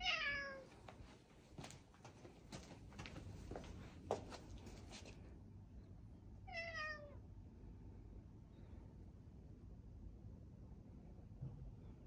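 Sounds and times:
cat meowing: 0:00.0 - 0:00.7, 0:06.5 - 0:07.2.

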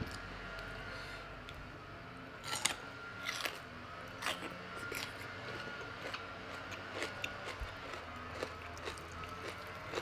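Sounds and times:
food being chewed: 0:02.4 - 0:10.0
crisp crunches: 0:04.2 - 0:10.0.

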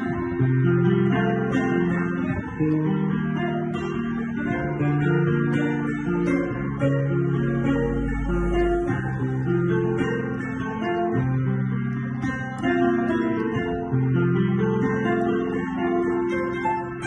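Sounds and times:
deep piano bass note: 0:00.0 - 0:15.8
grand piano chords: 0:00.0 - 0:17.0.

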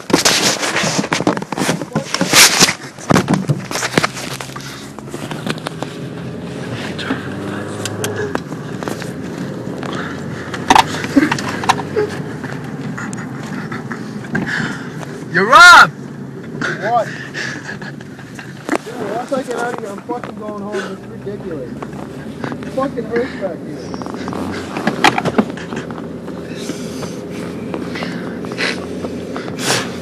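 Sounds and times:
knocks and scrapes getting into car: 0:00.0 - 0:07.3, 0:23.8 - 0:30.0
car engine humming: 0:00.0 - 0:30.0.

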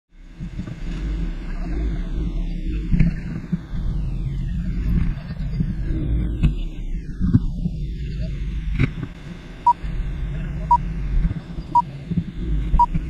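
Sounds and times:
low rumbling synth: 0:00.2 - 0:13.0.

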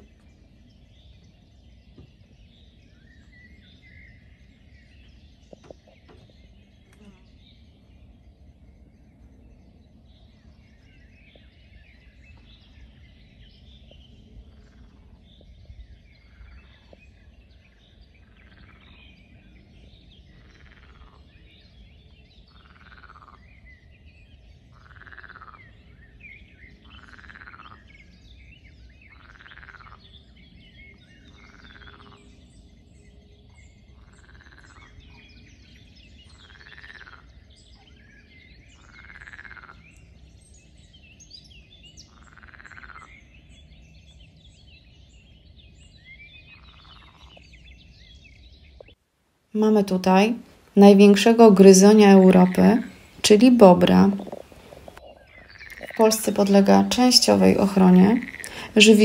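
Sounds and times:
frog croaking: 0:22.7 - 0:23.4, 0:27.0 - 0:27.8, 0:36.4 - 0:37.3, 0:38.8 - 0:39.8, 0:42.2 - 0:43.2, 0:49.8 - 0:59.0
birds chirping: 0:49.6 - 0:59.0.

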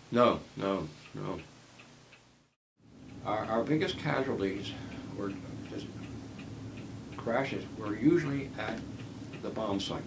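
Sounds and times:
clock ticking: 0:00.1 - 0:02.3, 0:03.0 - 0:10.0.

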